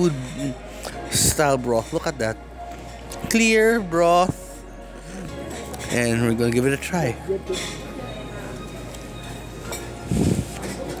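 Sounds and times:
restaurant dining room noise: 0:00.0 - 0:11.0.

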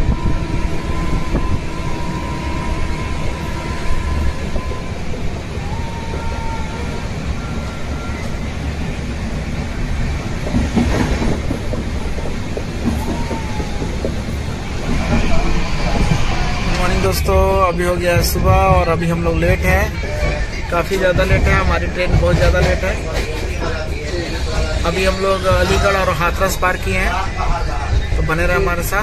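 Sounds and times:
train clatter: 0:00.0 - 0:29.0
train wheels rumbling on rails: 0:00.0 - 0:29.0.

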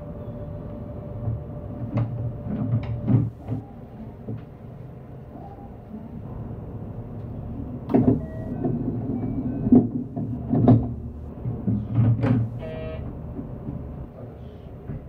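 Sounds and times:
train rumbling: 0:00.0 - 0:15.0
sharp knocks and thumps: 0:09.6 - 0:12.6
short buzzing tone: 0:12.6 - 0:13.1.

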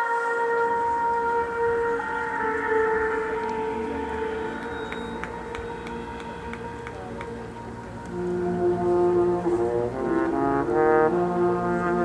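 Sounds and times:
marching band held chords: 0:00.0 - 0:12.0
light percussion ticks: 0:01.5 - 0:08.7.

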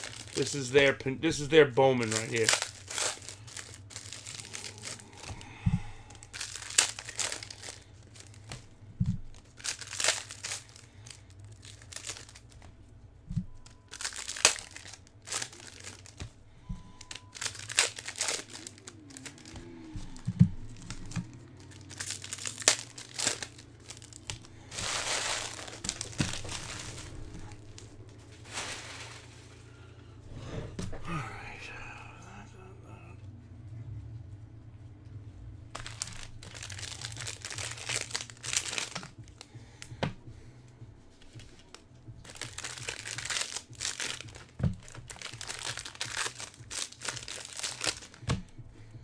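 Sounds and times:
foil wrappers crinkling and tearing: 0:00.0 - 0:12.7, 0:13.6 - 0:29.8, 0:35.7 - 0:39.9, 0:41.2 - 0:48.5.

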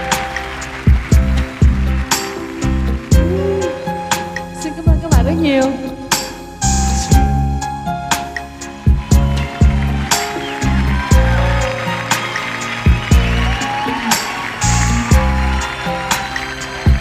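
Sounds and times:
bass: 0:00.0 - 0:17.0
electronic keyboard melody: 0:00.0 - 0:17.0.

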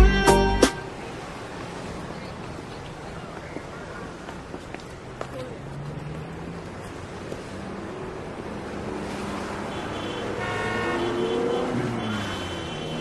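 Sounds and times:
vehicles passing on road: 0:00.8 - 0:13.0
vehicle horn: 0:09.6 - 0:13.0.

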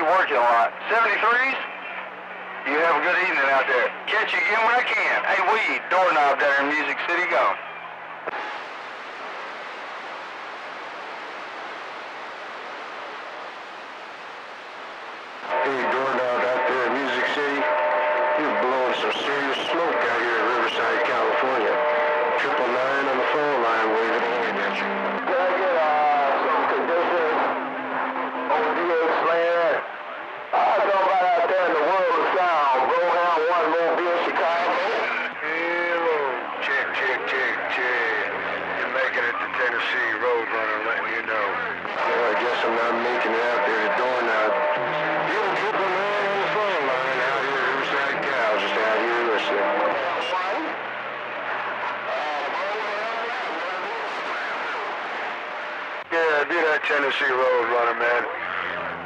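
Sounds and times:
voices over radio receiver: 0:00.0 - 0:08.7, 0:13.6 - 0:59.0
steady low tones: 0:08.2 - 0:30.6.

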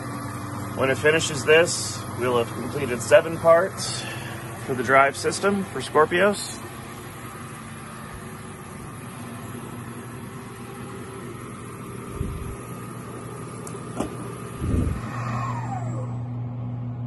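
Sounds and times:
falling whine: 0:00.0 - 0:17.0
milling machine hum: 0:00.0 - 0:17.0.

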